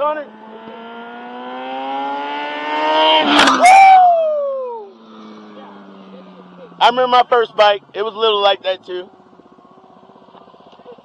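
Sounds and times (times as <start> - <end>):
motorcycle passing at speed: 0.0 - 11.0.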